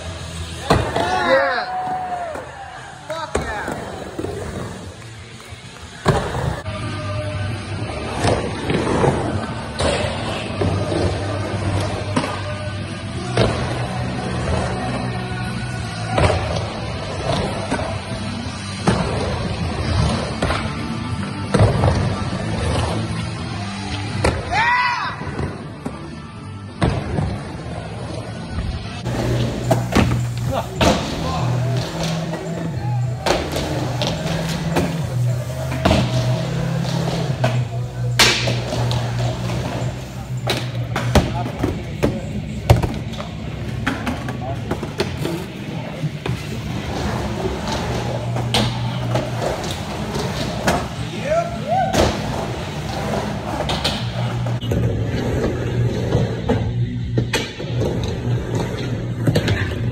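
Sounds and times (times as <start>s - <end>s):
skateboard wheels rolling: 0.0s - 6.8s, 26.8s - 59.9s.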